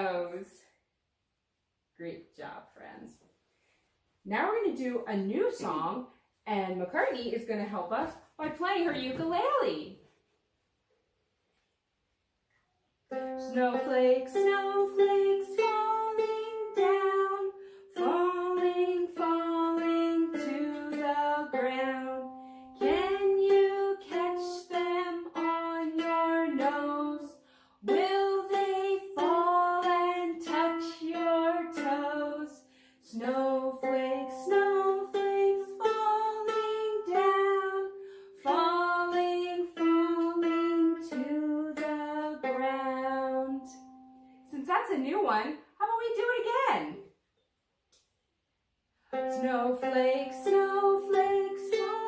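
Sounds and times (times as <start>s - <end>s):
woman singing children's song: 0.0s - 0.7s, 4.3s - 10.0s, 13.2s - 47.0s, 49.2s - 52.0s
ukulele strumming: 13.1s - 32.5s, 33.1s - 44.4s, 49.1s - 52.0s.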